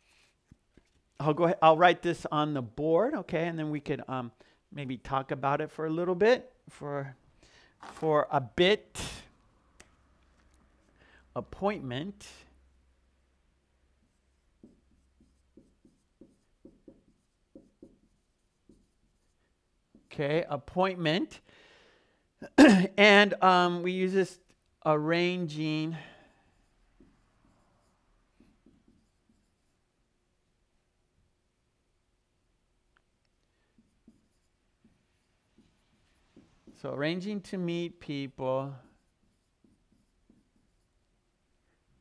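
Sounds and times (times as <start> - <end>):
marker writing on whiteboard: 8.9 - 21.4, 23.6 - 30.2, 33.0 - 42.0.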